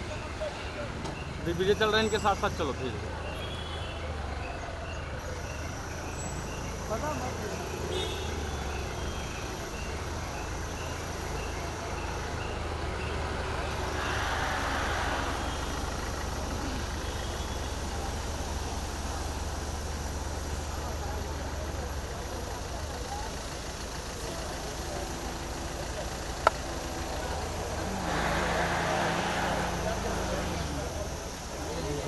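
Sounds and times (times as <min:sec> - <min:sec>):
street noise: 0:00.0 - 0:32.0
truck engine humming: 0:00.0 - 0:32.0.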